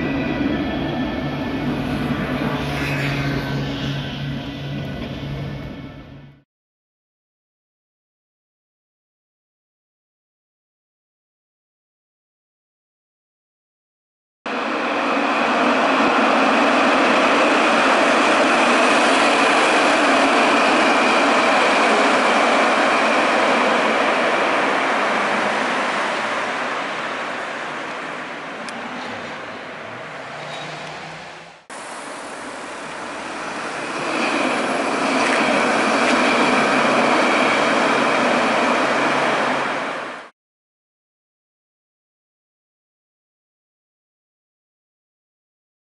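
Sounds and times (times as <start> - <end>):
tram running along track: 0.0 - 6.4, 14.5 - 40.3.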